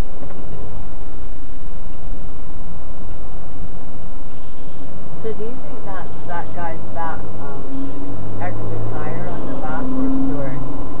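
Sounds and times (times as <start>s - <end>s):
car driving drone from inside: 0.0s - 11.0s
person's voice: 5.2s - 10.7s.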